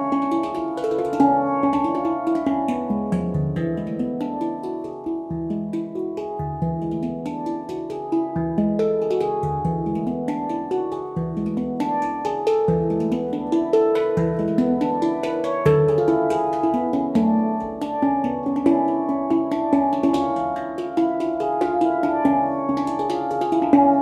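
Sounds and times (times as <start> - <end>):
handpan ringing metallic notes: 0.0 - 24.0
deep handpan bass note: 1.2 - 4.3.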